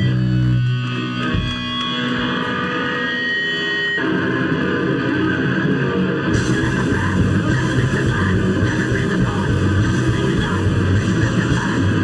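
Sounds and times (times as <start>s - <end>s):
distorted electric guitars: 0.0s - 12.0s
punk band riff: 0.0s - 12.0s.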